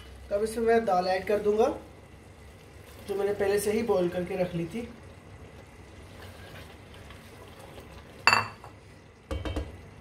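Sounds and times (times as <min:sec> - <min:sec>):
spatula stirring in metal pot: 0:06.0 - 0:08.3.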